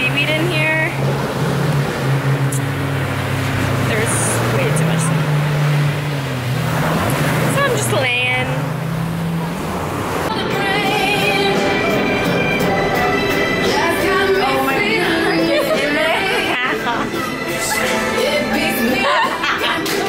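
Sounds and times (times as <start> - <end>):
low engine-like drone: 0.0 - 20.0
surf rushing: 0.0 - 20.0
wind: 0.0 - 20.0
music: 10.3 - 20.0.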